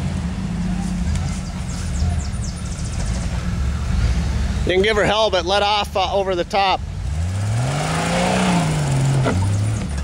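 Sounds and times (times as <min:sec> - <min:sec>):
engine revving under load: 0:06.2 - 0:10.0.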